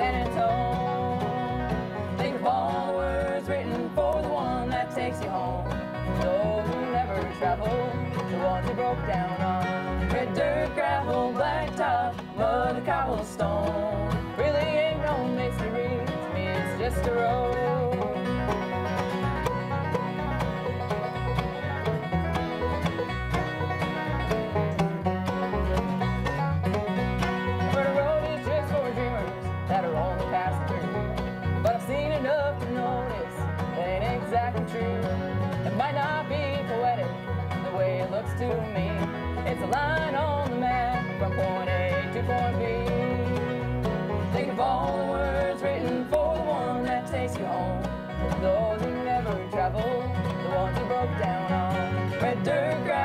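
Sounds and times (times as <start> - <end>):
acoustic guitar: 0.0 - 53.0
banjo: 0.0 - 53.0
bowed fiddle: 0.0 - 53.0
plucked bass beat: 0.0 - 53.0.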